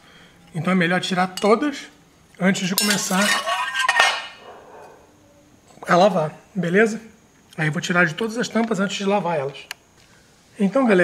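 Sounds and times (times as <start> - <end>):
metal cover clanging on stone sink: 2.8 - 4.4.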